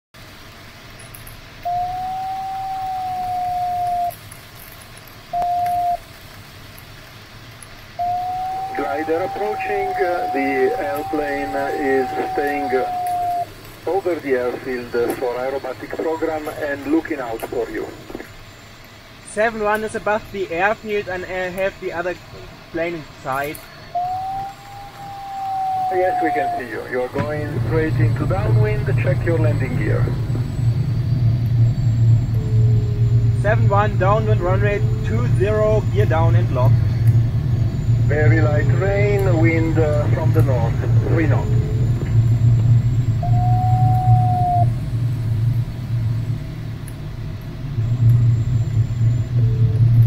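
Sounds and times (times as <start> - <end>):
electronic variometer tone: 1.6 - 6.1, 7.8 - 22.1, 22.8 - 50.0
radio voice: 8.0 - 18.3, 25.9 - 30.3, 33.4 - 36.8, 38.1 - 41.6.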